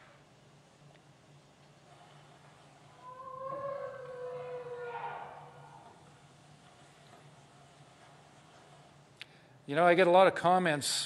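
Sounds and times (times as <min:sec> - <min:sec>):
long wailing vocalization: 0:03.0 - 0:06.0.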